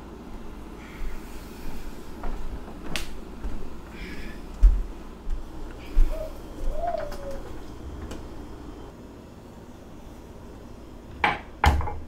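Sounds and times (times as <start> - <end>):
soft cooing tone: 5.8 - 8.0.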